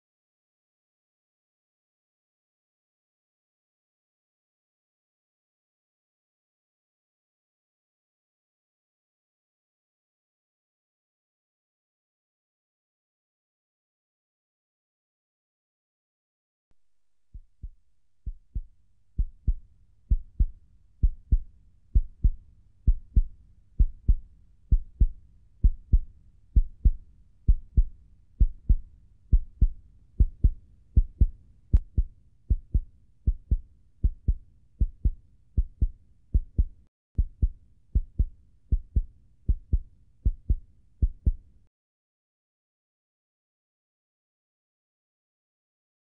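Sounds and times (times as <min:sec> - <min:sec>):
slow heartbeat thumps: 0:17.3 - 0:41.4.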